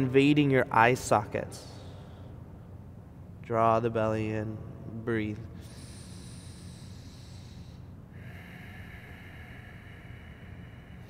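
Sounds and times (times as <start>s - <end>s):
low steady background hum: 0.0s - 11.0s
person breathing deeply: 5.6s - 11.0s.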